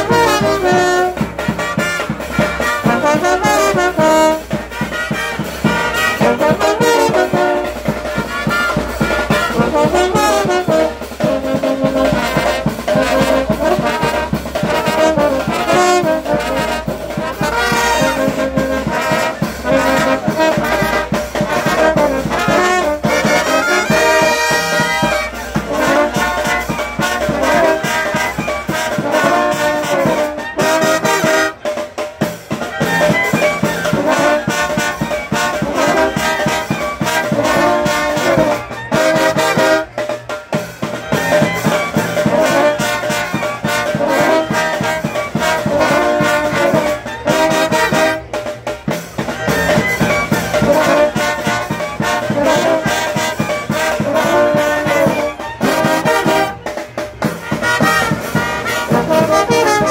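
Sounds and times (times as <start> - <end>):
brass band playing: 0.0 - 59.9
percussion beat: 0.0 - 59.9.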